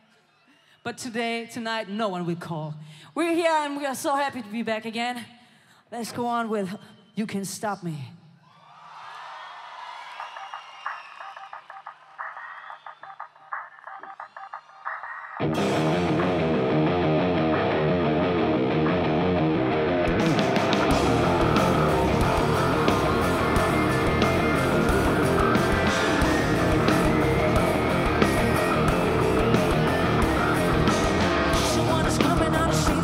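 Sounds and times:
drums: 9.2 - 33.0
distorted electric guitars: 12.2 - 33.0
repeated intro notes: 13.4 - 33.0
bass guitar: 15.4 - 33.0.

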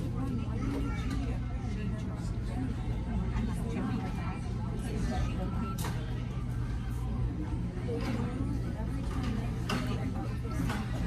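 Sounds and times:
indistinct chatter: 0.0 - 11.0.

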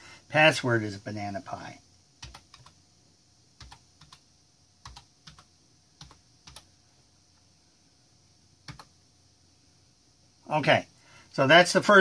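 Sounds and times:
keystrokes on computer keyboard: 2.2 - 2.8, 3.6 - 4.2, 4.8 - 6.7, 8.6 - 8.9.

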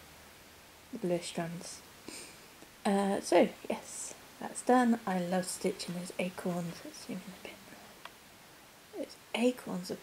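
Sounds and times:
woman speaking softly: 1.0 - 1.8, 2.8 - 8.0, 8.9 - 10.0.

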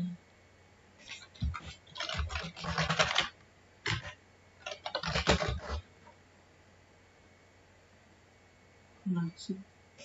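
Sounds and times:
computer keyboard typing: 1.0 - 5.8.

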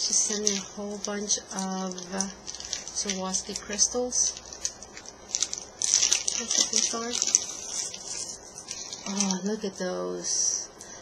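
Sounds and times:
plastic bag crinkling: 0.0 - 9.6.

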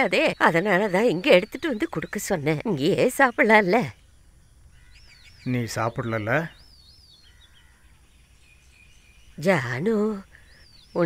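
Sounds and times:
faint birdsong chirps: 0.0 - 11.0.

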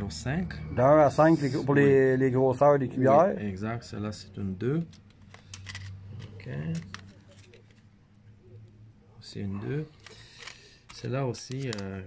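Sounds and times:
low steady hum: 0.0 - 12.0
plastic blister packs clicking: 10.0 - 12.0.

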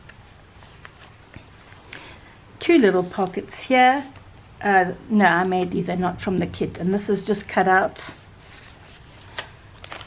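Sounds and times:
paper pages handled: 0.0 - 2.3, 8.4 - 10.0.

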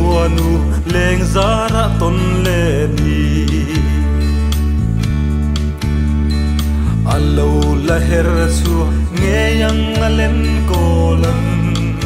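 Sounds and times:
man singing: 0.0 - 4.6, 6.9 - 12.0
acoustic guitar: 0.0 - 12.0
bass: 0.0 - 12.0.

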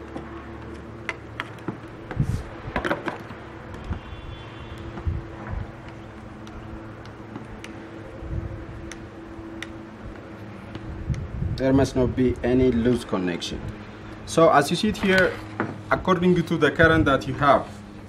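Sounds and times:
tool clicking on wires: 3.1 - 8.1, 8.8 - 11.2.

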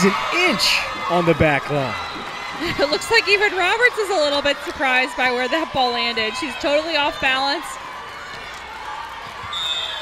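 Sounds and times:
referee's whistle blast: 9.5 - 10.0.

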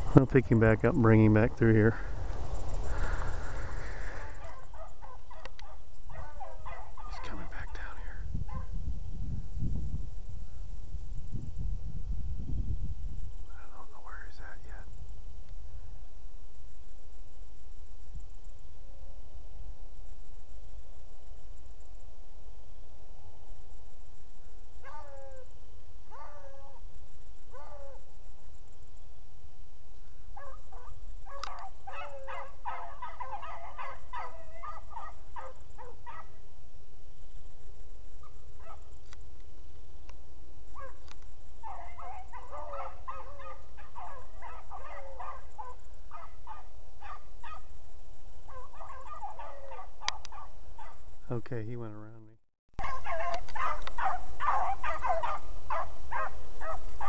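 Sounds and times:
hounds baying: 3.8 - 7.8, 8.5 - 8.7, 30.4 - 36.4, 41.6 - 47.7, 48.5 - 51.0, 52.8 - 57.0.

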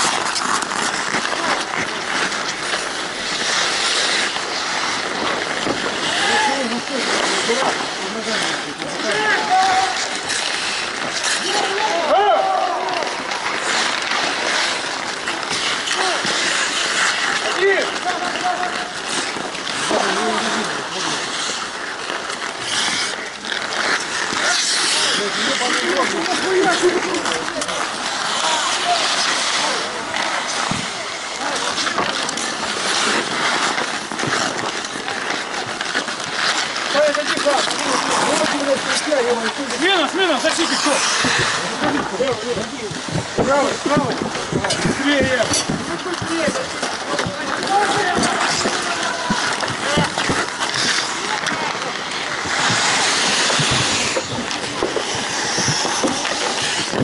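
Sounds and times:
hockey sticks and puck clacking: 0.0 - 57.0
skate blades scraping ice: 0.0 - 57.0
players shouting: 6.0 - 7.4, 8.3 - 21.3, 46.1 - 54.3.

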